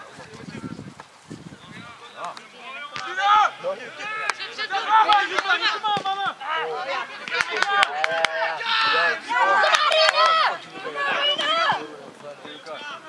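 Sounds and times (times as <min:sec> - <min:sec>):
voices shouting and calling out: 0:00.0 - 0:13.0.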